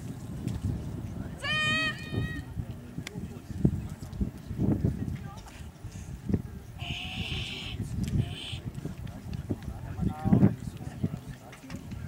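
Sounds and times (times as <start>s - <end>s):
high-pitched wavering cry: 6.8s - 8.6s.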